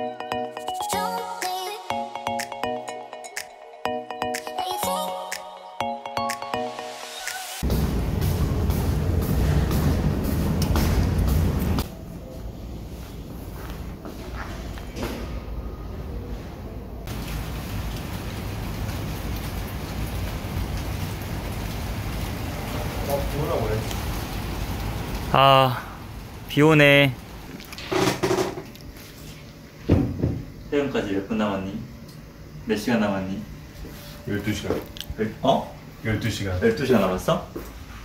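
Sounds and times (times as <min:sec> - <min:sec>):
loud deep noise: 0:07.6 - 0:11.9
steady rain falling: 0:17.1 - 0:27.8.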